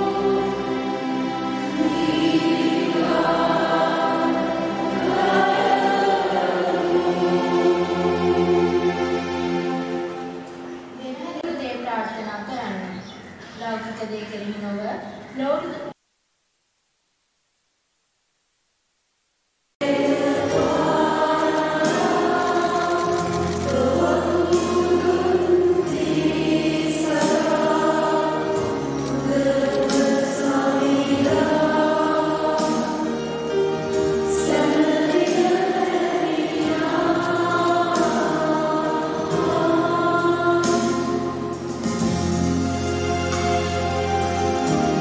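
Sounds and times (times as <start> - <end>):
choir singing church music: 0.0 - 11.0, 19.8 - 45.0
low instrumental accompaniment: 19.8 - 45.0.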